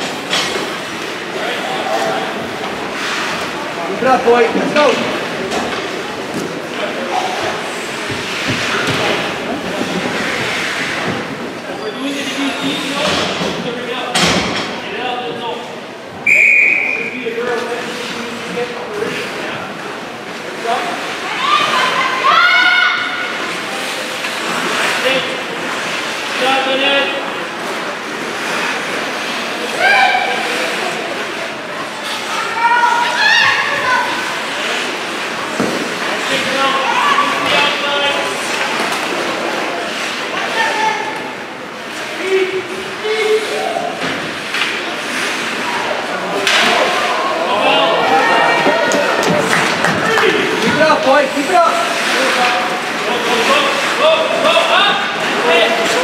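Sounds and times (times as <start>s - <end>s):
echoing hall noise: 0.0s - 56.0s
spectators' voices and shouts: 0.0s - 56.0s.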